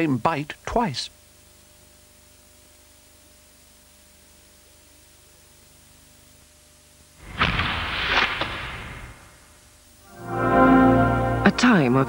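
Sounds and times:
faint tape hiss: 0.0s - 12.0s
sharp cracks: 7.2s - 9.7s.

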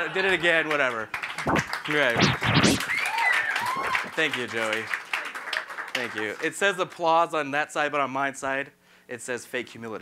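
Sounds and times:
audience clapping: 0.7s - 2.2s, 2.9s - 7.0s
whoops: 2.8s - 4.1s.

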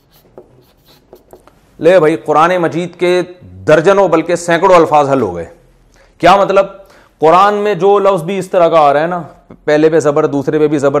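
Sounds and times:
marker scratching on paper: 0.0s - 1.7s.

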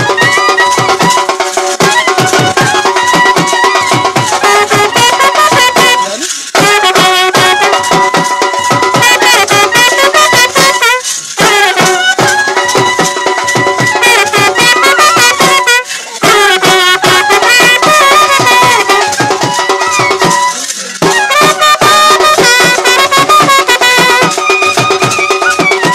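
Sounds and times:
wavering melody line: 0.0s - 6.2s, 17.0s - 21.4s
fast drum beats: 0.0s - 25.9s.

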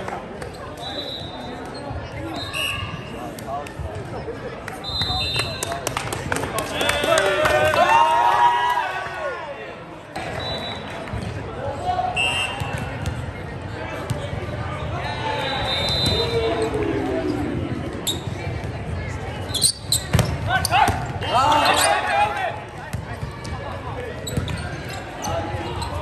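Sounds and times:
hubbub of voices: 0.0s - 26.0s
players shouting: 14.8s - 18.3s.

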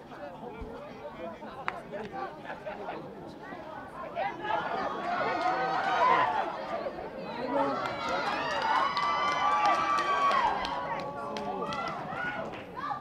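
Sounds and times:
spectators shouting: 4.4s - 13.0s
long drawn-out shout: 7.6s - 13.0s.

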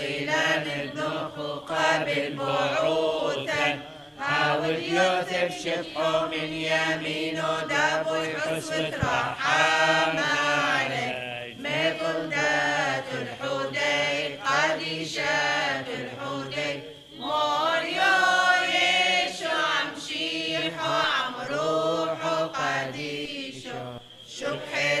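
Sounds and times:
voices chanting liturgical chant: 0.0s - 25.0s.

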